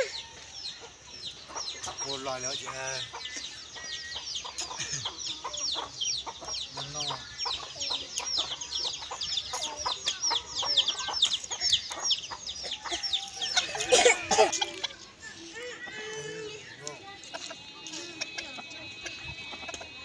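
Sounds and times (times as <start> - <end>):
chickens chirping: 0.0 - 20.0.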